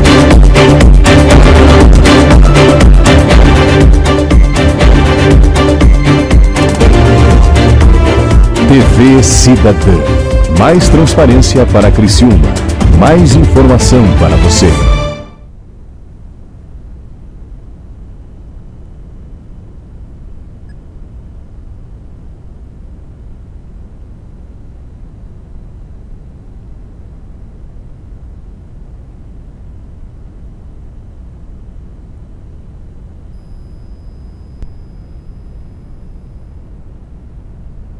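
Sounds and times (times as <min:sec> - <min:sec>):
low rumbling background noise: 0:15.3 - 0:37.9
faint hiss: 0:15.7 - 0:37.9
faint click: 0:20.6 - 0:20.8, 0:34.5 - 0:34.9.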